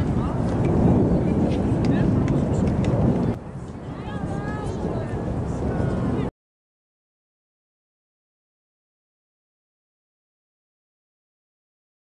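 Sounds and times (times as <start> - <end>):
faint voices: 0.0 - 6.3
wind rumble on microphone: 0.0 - 6.3.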